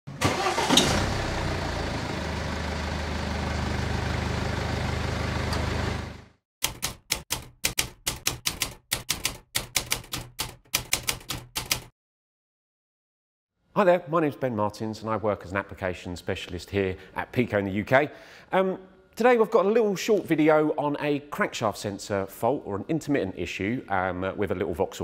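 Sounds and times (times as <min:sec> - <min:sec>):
car engine starting and idling: 0:00.1 - 0:06.3
typewriter keystrokes: 0:06.6 - 0:11.9.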